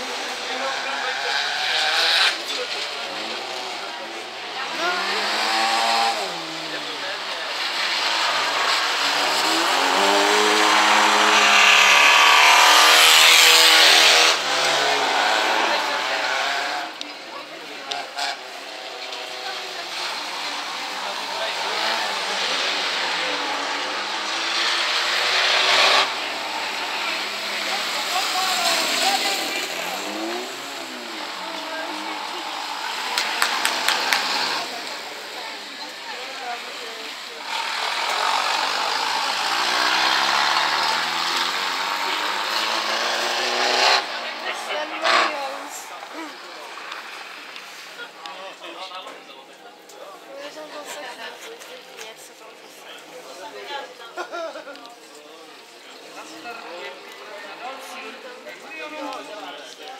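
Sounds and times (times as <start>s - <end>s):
racing car engines revving: 0.0s - 49.1s.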